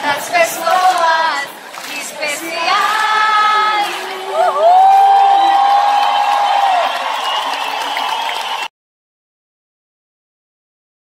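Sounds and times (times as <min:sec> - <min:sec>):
crowd cheering: 0:00.0 - 0:08.7.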